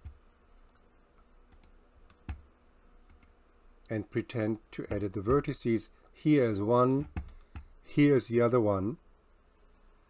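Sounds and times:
computer mouse clicks: 0:00.0 - 0:03.3
faint low hum: 0:00.0 - 0:10.0.

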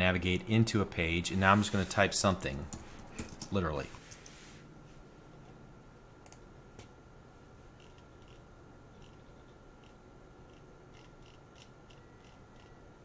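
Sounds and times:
thin steady hum: 0:00.0 - 0:13.0
computer mouse clicks: 0:09.0 - 0:12.8.

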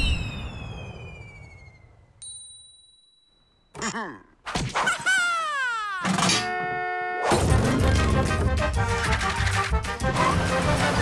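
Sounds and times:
falling whistle: 0:00.0 - 0:02.1.

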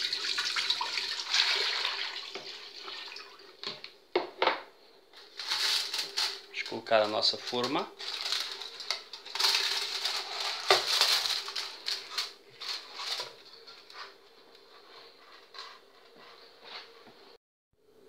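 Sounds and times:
aluminium foil crinkling: 0:05.2 - 0:14.7.

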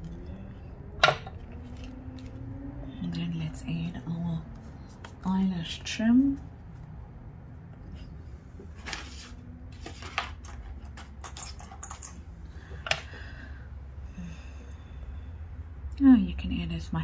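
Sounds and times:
low steady hum: 0:00.0 - 0:17.0
hands handling craft materials: 0:04.6 - 0:06.8.

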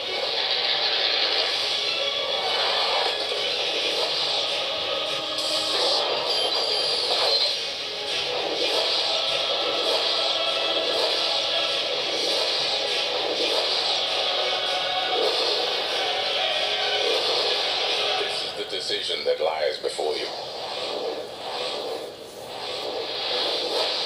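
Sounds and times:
trailer music: 0:00.0 - 0:18.8
film sound effects: 0:00.0 - 0:24.0.

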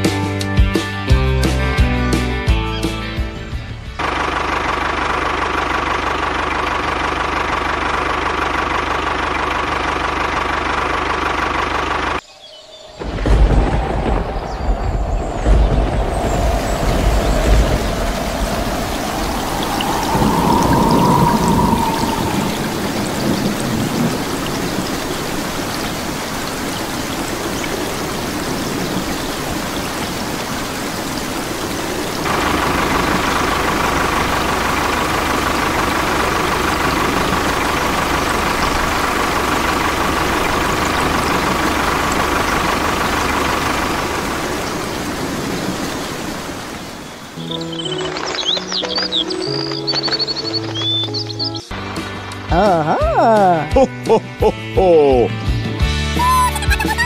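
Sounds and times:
rain hissing: 0:04.0 - 0:53.7
thunder rumble: 0:12.1 - 0:51.3
whistling wind: 0:12.2 - 0:51.6.

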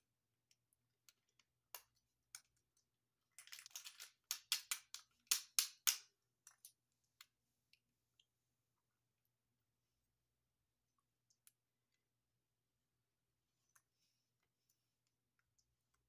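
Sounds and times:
plastic toy figures clicking: 0:03.4 - 0:06.7.

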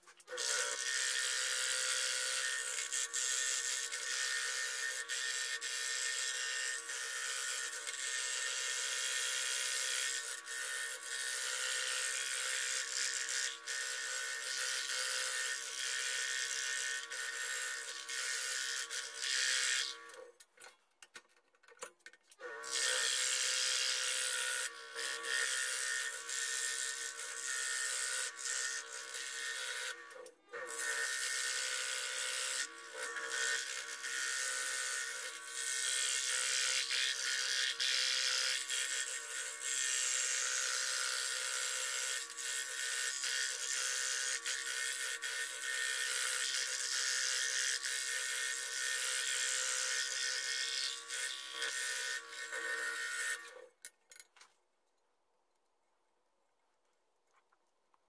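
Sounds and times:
scroll saw cutting wood: 0:00.0 - 0:20.5, 0:22.4 - 0:53.8.

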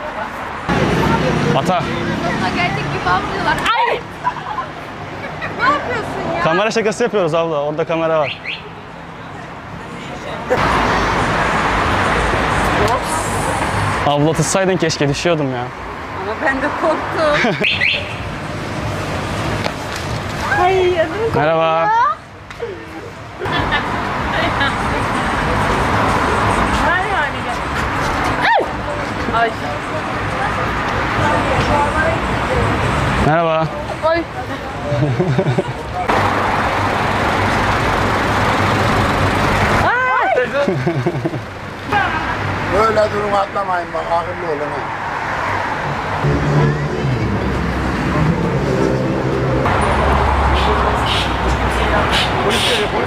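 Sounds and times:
passers-by talking: 0:00.0 - 0:18.0, 0:19.4 - 0:48.5, 0:50.1 - 0:53.0
traffic hum: 0:00.0 - 0:53.0
low vehicle rumble: 0:33.8 - 0:42.8, 0:45.4 - 0:52.5
indistinct voices: 0:44.2 - 0:53.0.

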